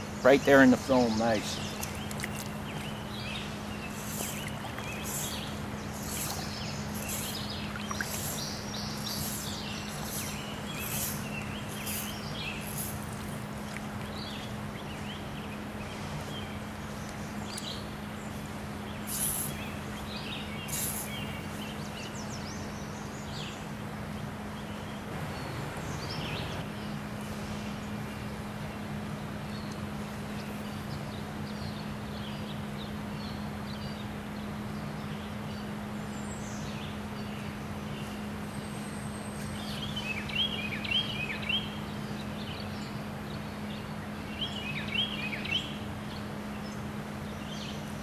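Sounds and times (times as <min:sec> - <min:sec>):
bird chirping: 0:00.0 - 0:23.7, 0:34.8 - 0:47.9
stream water rushing: 0:00.6 - 0:14.9.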